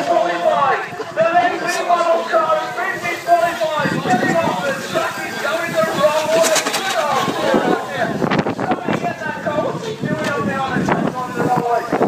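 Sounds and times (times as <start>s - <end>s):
voices talking indistinctly: 0.0s - 12.0s
rough rushing noise: 2.8s - 9.0s.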